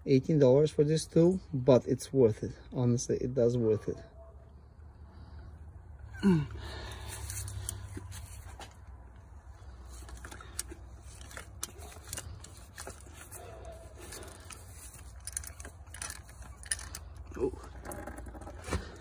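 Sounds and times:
metal clicks of hand tools: 10.1 - 18.1.

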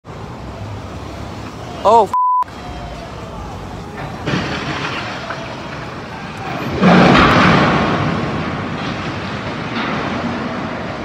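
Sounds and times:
low hum of traffic: 0.0 - 11.0.

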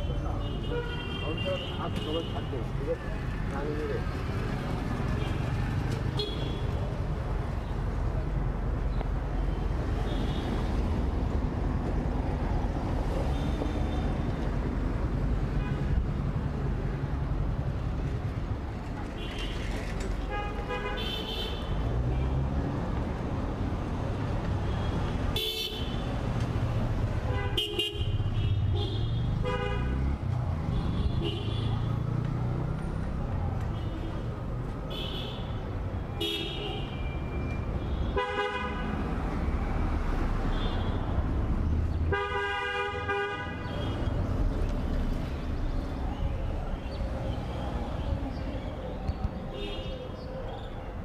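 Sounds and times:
traffic rumble: 0.0 - 51.0
vehicle horns honking: 27.3 - 30.0, 38.0 - 38.9, 42.1 - 44.0.

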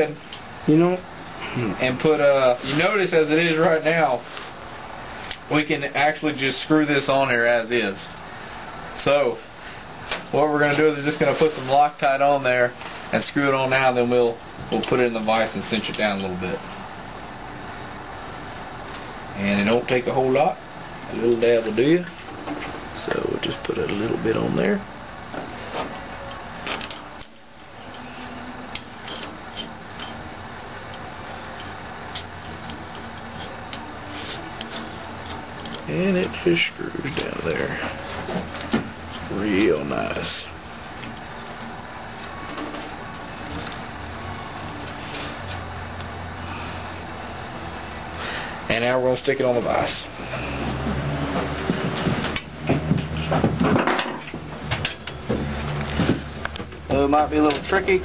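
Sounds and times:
metal clunks and knocks: 51.3 - 56.9.

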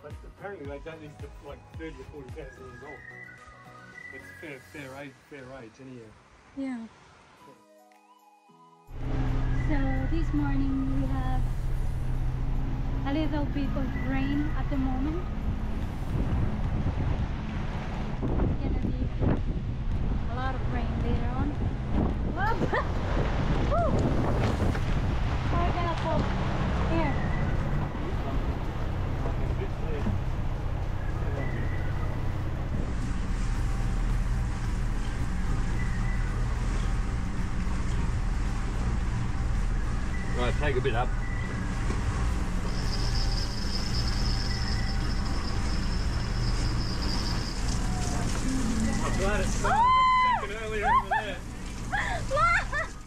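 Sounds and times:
boat engine drone: 8.9 - 53.0
wind buffeting microphone: 12.4 - 40.2.

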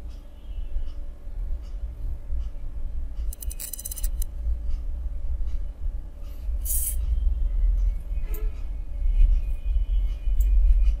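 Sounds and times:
mouse scroll wheel clicking: 3.3 - 4.3.

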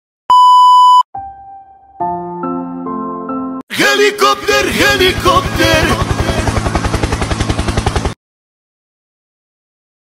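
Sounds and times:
high-pitched censor bleep: 0.3 - 1.1.

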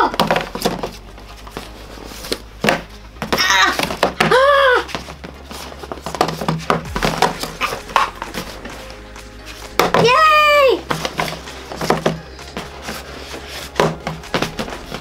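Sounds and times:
inflatable gloves knocking on boxes: 0.0 - 8.8, 9.6 - 15.0
vinyl rubbing: 0.0 - 15.0.

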